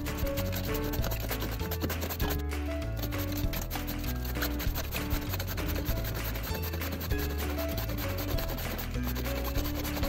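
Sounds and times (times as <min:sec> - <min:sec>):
background music: 0:00.0 - 0:10.0
cabbage shredded on slicer: 0:00.0 - 0:10.0.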